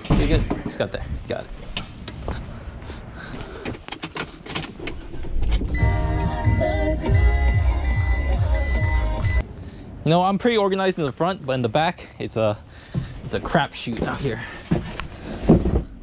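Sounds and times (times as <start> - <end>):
music with heavy bass beat: 5.8 - 9.4
high beeping tone: 5.8 - 9.5.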